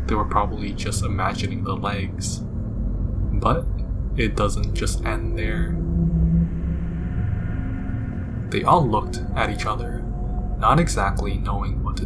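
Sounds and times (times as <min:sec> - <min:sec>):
dark ambient drone: 0:00.0 - 0:12.0.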